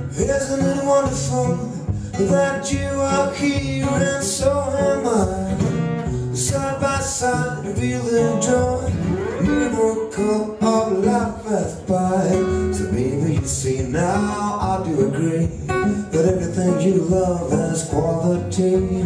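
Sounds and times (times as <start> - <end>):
acoustic guitar: 0.0 - 19.0
man singing: 0.0 - 19.0.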